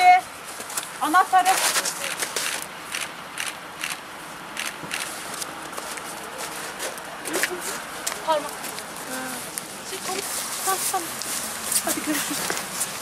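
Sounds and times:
footsteps crunching snow: 0.4s - 2.6s, 5.0s - 13.0s.

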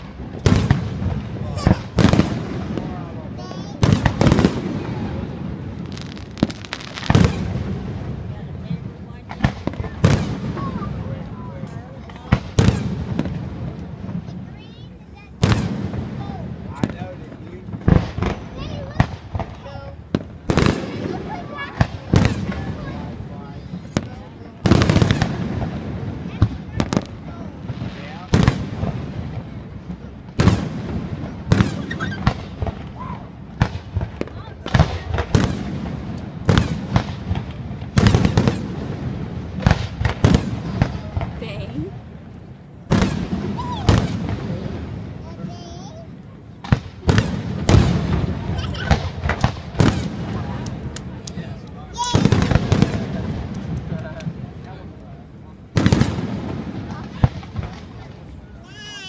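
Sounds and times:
crowd voices: 0.0s - 59.0s
fireworks bursting: 0.0s - 59.0s.

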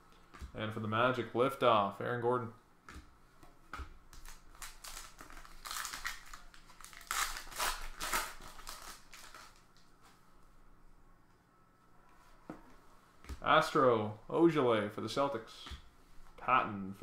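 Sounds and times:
foil wrapper crinkling and tearing: 4.2s - 9.7s.

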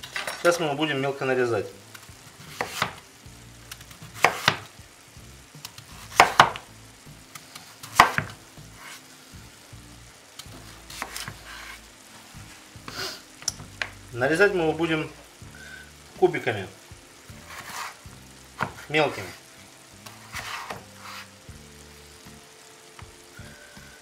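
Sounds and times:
meat sizzling in a pan: 0.0s - 24.0s.

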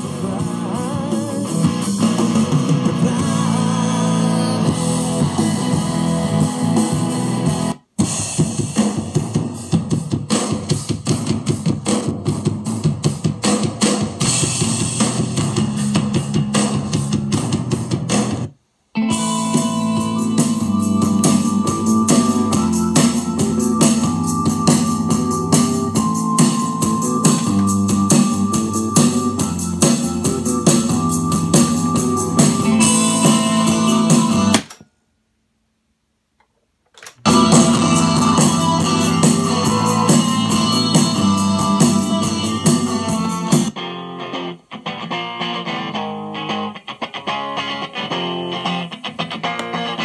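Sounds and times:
song with guitar and drums: 0.0s - 34.7s, 37.2s - 50.0s.

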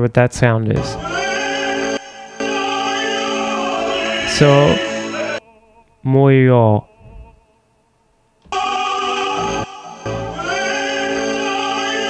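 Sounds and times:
male opera singer with accompaniment: 0.8s - 12.0s.

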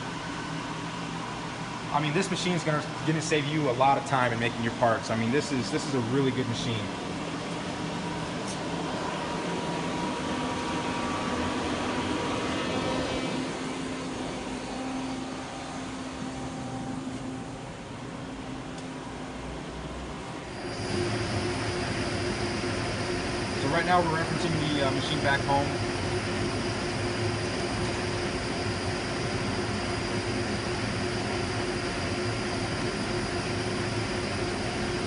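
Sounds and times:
air compressor drone: 0.0s - 35.0s
lathe hum with high whine: 0.0s - 35.0s.

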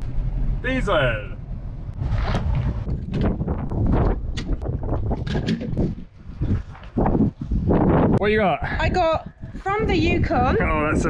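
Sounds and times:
wind rumble on microphone: 1.4s - 11.0s.

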